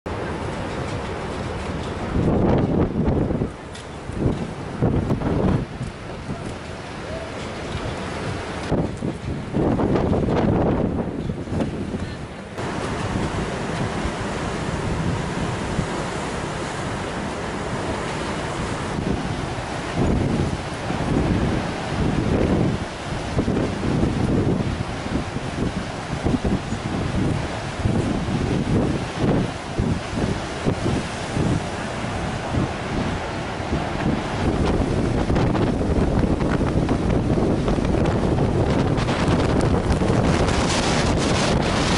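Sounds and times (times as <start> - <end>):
wind gusting on microphone: 0.1 - 41.9
surf breaking on rocks: 12.6 - 41.9.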